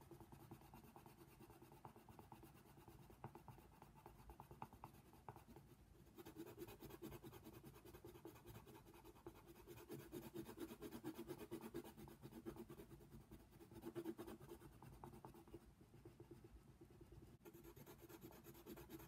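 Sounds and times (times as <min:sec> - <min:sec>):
pencil scratching on paper: 0:00.0 - 0:19.0.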